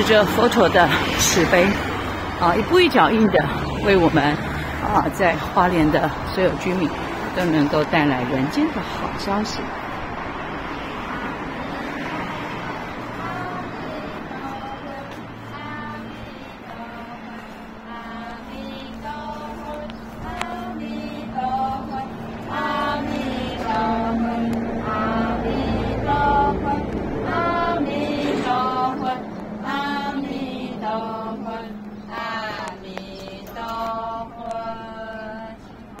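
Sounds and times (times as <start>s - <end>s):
monastics chanting: 0.0s - 36.0s
street traffic hum: 0.0s - 36.0s.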